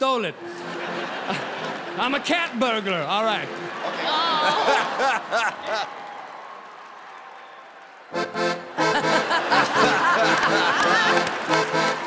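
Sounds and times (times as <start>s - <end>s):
audience applause: 3.5s - 12.0s.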